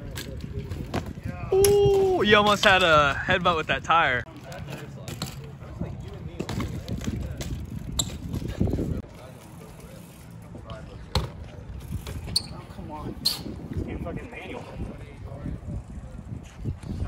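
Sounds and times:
bike tyres rolling on concrete: 0:00.0 - 0:17.0.

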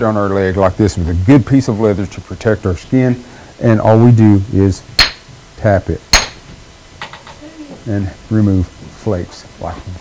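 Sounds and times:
antler striking stone: 0:05.0 - 0:05.2, 0:06.1 - 0:06.4.

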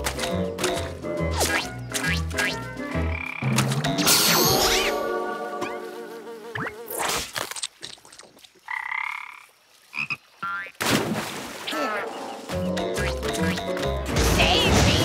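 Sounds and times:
splash into water: 0:10.7 - 0:12.2.

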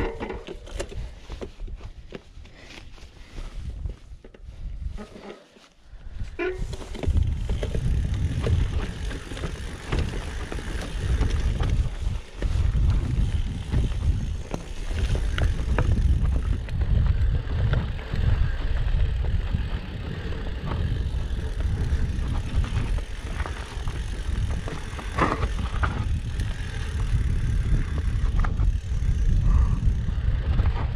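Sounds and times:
bike clicks and rattles: 0:00.0 - 0:30.9
wind on microphone: 0:06.0 - 0:30.9
tyres over loose stones: 0:06.6 - 0:28.8.

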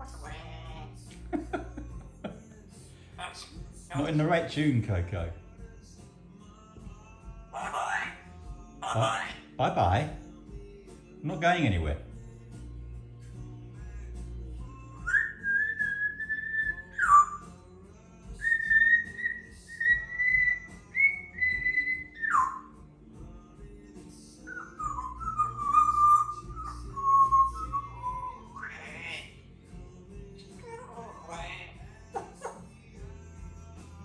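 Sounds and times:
parrot whistling a tune: 0:15.0 - 0:17.5, 0:18.4 - 0:22.8, 0:24.5 - 0:29.3.

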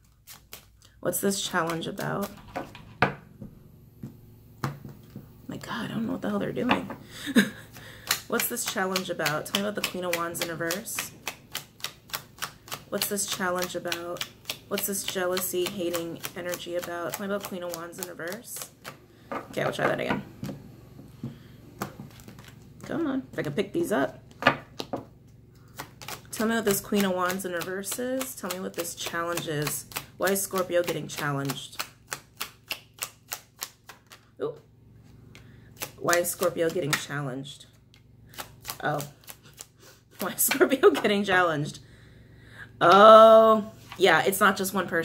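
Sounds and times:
cards being shuffled: 0:21.8 - 0:22.8, 0:31.8 - 0:34.3.

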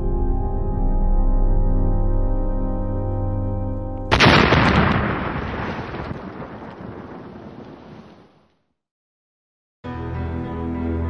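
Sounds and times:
explosion sound effect: 0:04.1 - 0:08.3.

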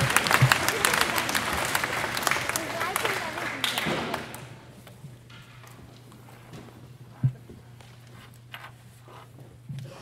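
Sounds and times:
audience applause: 0:00.0 - 0:04.5.

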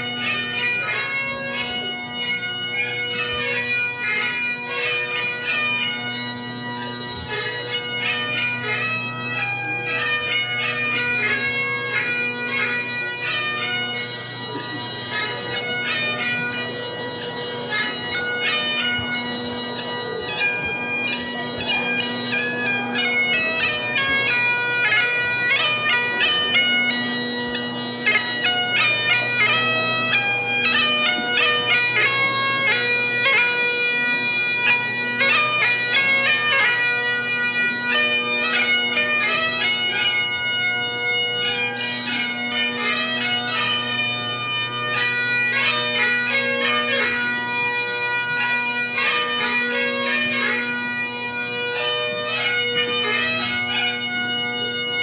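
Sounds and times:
bagpipe chanter melody: 0:00.0 - 0:55.0
bagpipe drone: 0:00.0 - 0:55.0.

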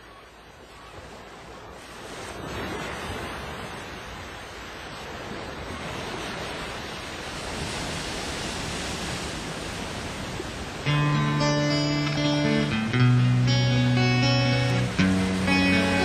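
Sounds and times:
ocean waves rushing: 0:00.0 - 0:16.0.

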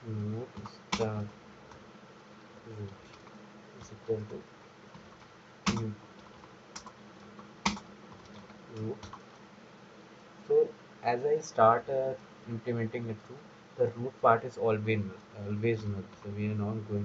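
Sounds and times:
keyboard key clicks: 0:05.7 - 0:05.9.

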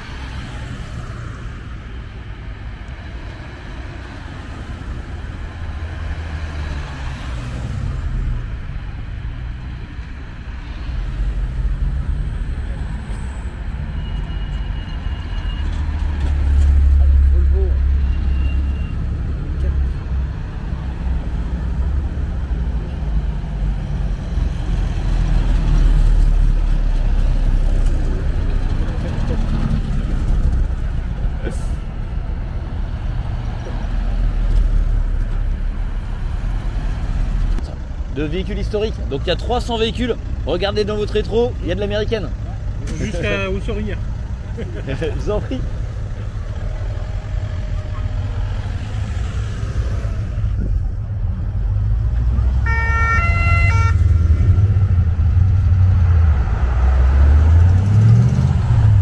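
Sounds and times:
vehicles driving past: 0:00.0 - 0:59.0.

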